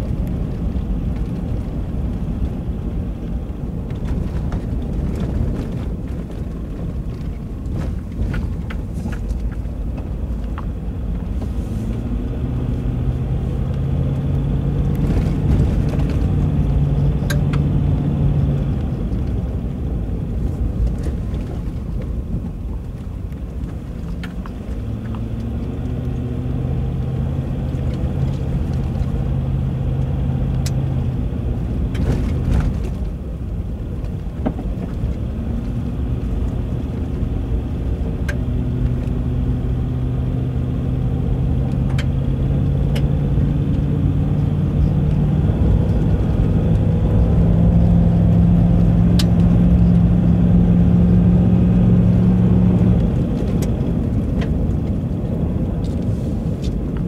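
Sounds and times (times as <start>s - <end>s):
car engine: 0.0s - 57.0s
tyres on unpaved road: 0.0s - 57.0s.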